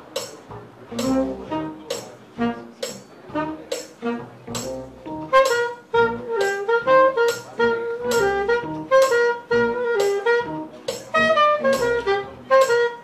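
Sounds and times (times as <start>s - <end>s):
electric keyboard chords: 0.0s - 13.0s
upright bass: 0.0s - 13.0s
saxophone melody: 0.8s - 13.0s.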